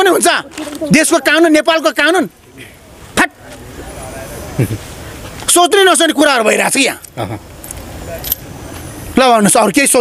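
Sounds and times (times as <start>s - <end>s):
light metallic jingle: 7.0s - 8.6s.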